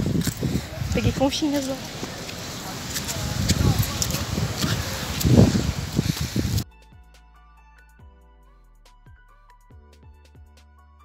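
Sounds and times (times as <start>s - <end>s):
wind buffeting microphone: 0.0s - 6.6s.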